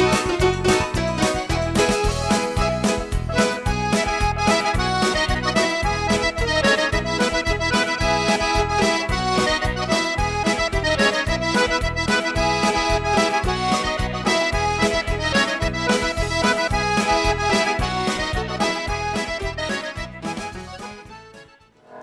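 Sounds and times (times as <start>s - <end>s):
accordion playing lively tune: 0.0s - 21.8s.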